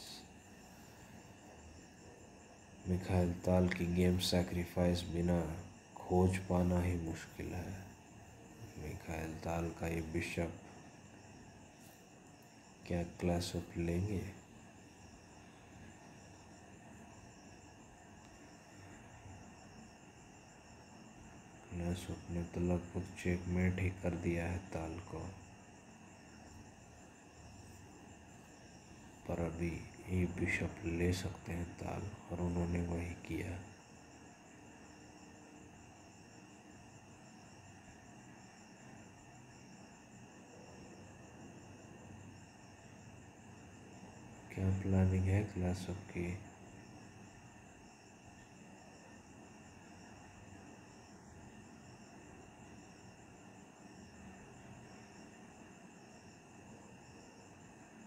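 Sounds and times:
crickets chirring: 0.0 - 58.0
low background hiss: 0.0 - 58.0.

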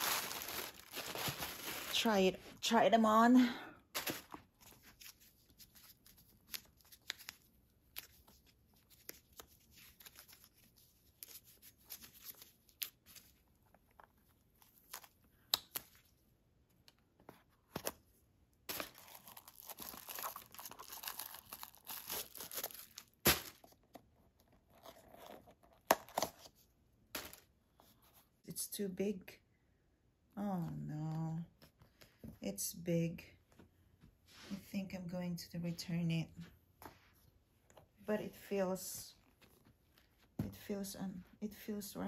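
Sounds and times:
tissue paper crinkling: 0.0 - 2.5, 18.7 - 23.7.

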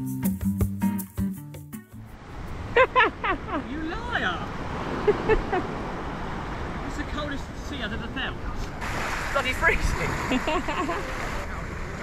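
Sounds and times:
acoustic guitar music: 0.0 - 2.2
small waves at shoreline: 2.3 - 8.0, 8.7 - 12.0.

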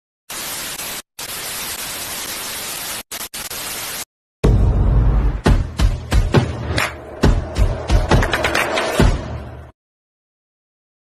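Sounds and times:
television static hiss: 0.3 - 4.1.

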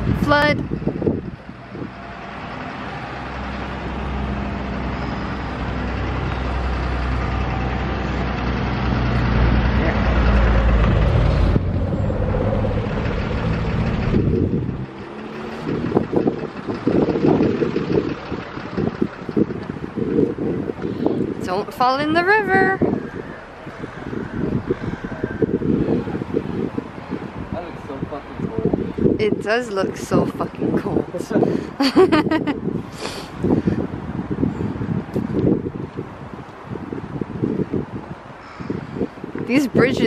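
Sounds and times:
heavy vehicle engine rumble: 0.0 - 40.0
wind buffeting microphone: 0.0 - 40.0.

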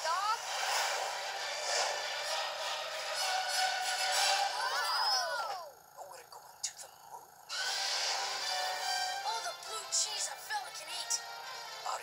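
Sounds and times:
film trailer soundtrack rushing noise: 0.0 - 5.3, 7.4 - 12.0.

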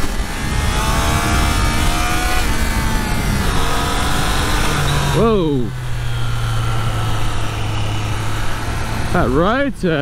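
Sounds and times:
wind rush over microphone: 0.0 - 9.4
motorcycle engine running: 0.0 - 10.0.

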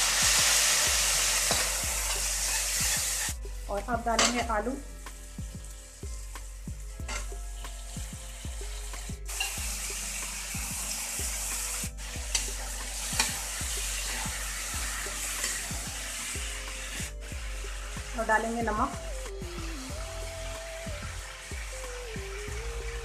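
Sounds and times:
potatoes sizzling in oil: 0.0 - 23.0.

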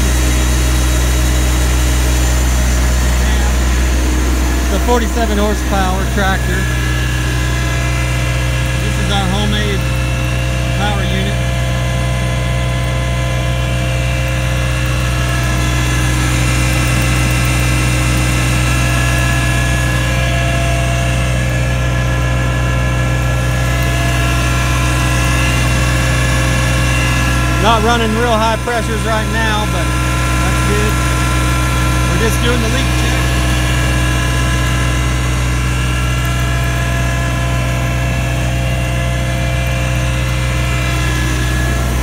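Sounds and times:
hydraulic pump whining: 0.0 - 42.0
tractor diesel engine running: 0.0 - 42.0.

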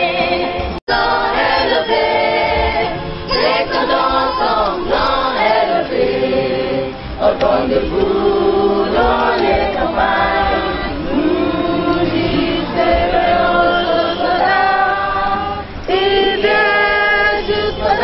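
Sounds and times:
youth choir singing unaccompanied: 0.0 - 18.0.

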